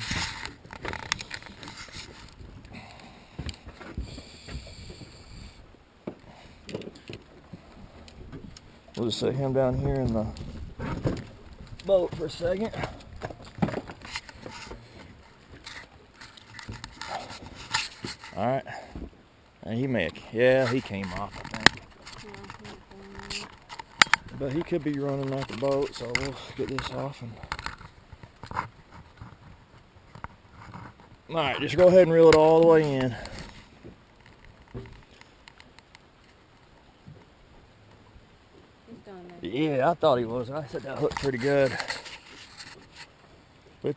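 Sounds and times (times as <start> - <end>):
knocks and taps in a boat: 9.7 - 15.7, 32.3 - 36.0.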